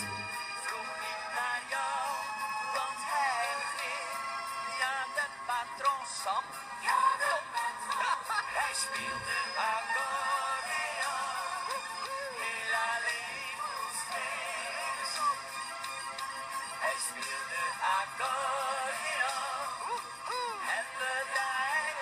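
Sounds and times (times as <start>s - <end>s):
held instrumental notes: 0.0s - 0.5s
man singing schlager song: 8.5s - 11.2s.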